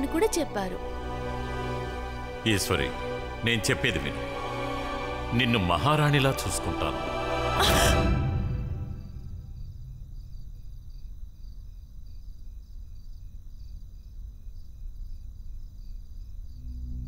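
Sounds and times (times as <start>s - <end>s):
crickets chirping: 0.0s - 17.0s
low steady rumble: 8.4s - 12.4s.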